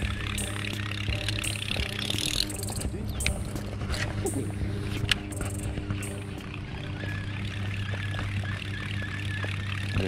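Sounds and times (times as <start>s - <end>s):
boat motor running: 0.0s - 10.0s.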